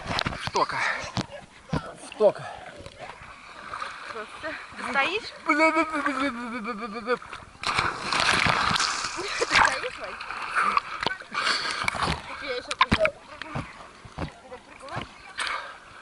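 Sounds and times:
water churning and sloshing: 0.0 - 16.0
loud splash into water: 7.6 - 9.8.

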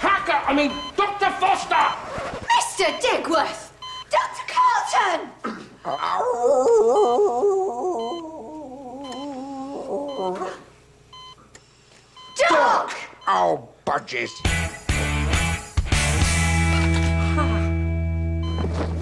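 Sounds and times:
patient monitor beeping: 0.4 - 4.4, 5.9 - 14.8, 18.4 - 19.0
wavering wailing voice: 5.9 - 10.6.

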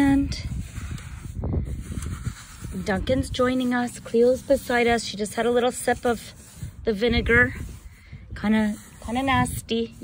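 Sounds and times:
hands digging in damp sand: 0.0 - 10.0.

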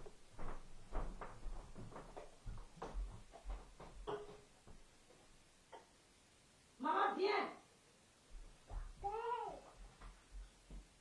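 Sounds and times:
faint low thuds: 8.3 - 11.0.

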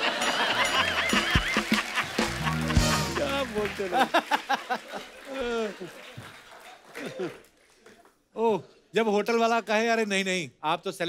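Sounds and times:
background music: 0.0 - 4.5.

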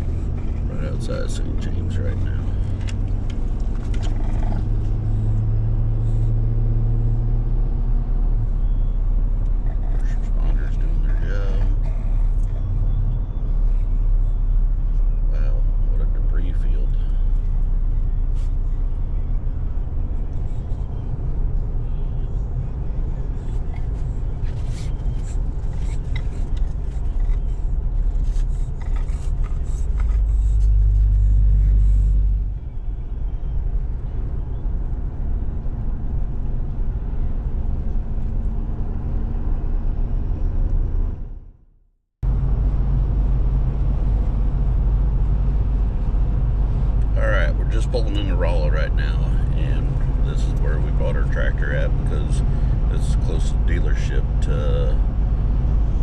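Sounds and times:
road and engine rumble: 0.0 - 56.0.

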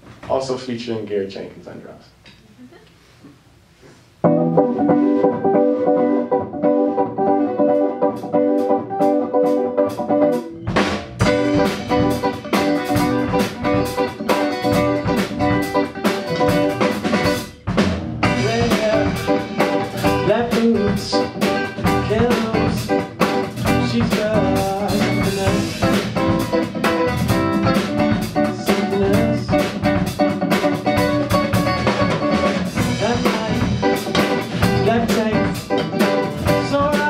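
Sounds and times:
bass line: 4.2 - 37.0
drum kit: 4.2 - 37.0
electric guitar chords: 4.2 - 37.0.

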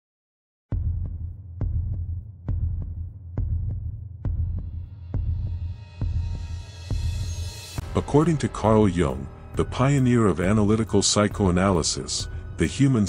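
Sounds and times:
deep throbbing double-beat pulse: 0.7 - 12.7.

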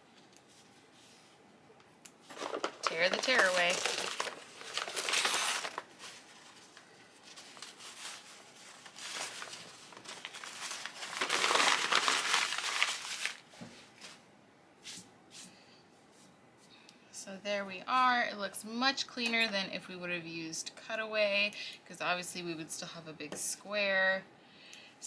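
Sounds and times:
stabilizer paper tearing: 2.3 - 5.9, 7.4 - 13.4.

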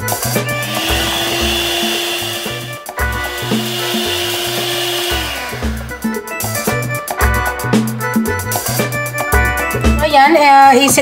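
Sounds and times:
background music: 0.0 - 11.0
electric hand mixer running: 0.5 - 6.6.

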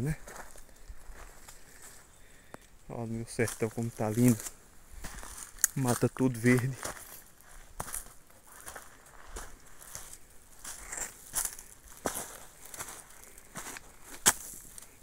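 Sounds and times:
footsteps on leafy stony trail: 0.0 - 2.6, 3.2 - 15.0.

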